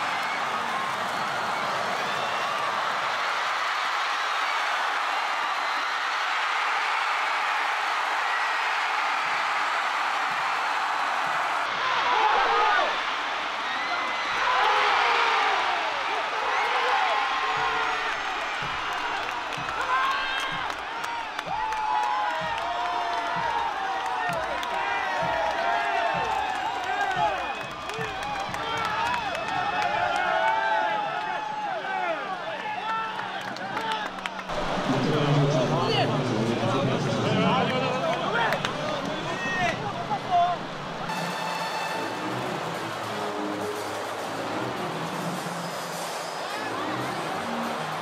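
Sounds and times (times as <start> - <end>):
stadium crowd cheering: 0.0 - 48.0.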